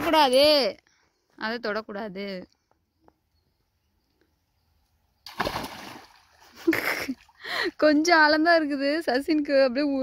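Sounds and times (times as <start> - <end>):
loud splash into pool: 5.3 - 6.3
water sloshing: 5.3 - 7.4.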